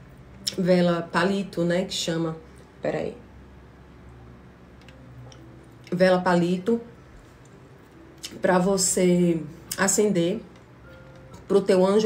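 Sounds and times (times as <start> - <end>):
woman speaking: 0.5 - 3.3, 5.9 - 7.0, 8.2 - 10.5, 11.4 - 12.0.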